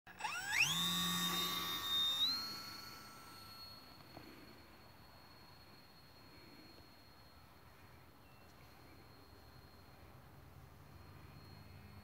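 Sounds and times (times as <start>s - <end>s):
electric motor and propeller whine: 0.1s - 12.0s.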